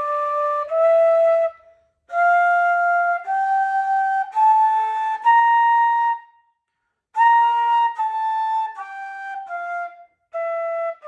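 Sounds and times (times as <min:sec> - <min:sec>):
bamboo flute playing scale: 0:00.0 - 0:06.5, 0:07.1 - 0:11.0.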